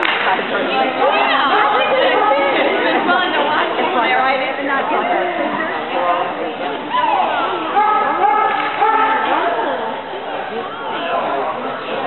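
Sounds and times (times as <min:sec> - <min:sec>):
crowd chatter in echoing hall: 0:00.0 - 0:12.0.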